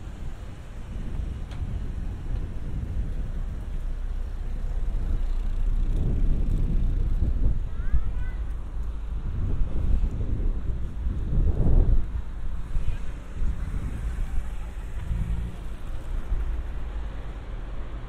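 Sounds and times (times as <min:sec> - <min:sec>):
road traffic: 0:00.0 - 0:18.0
wind buffeting microphone: 0:00.0 - 0:18.0.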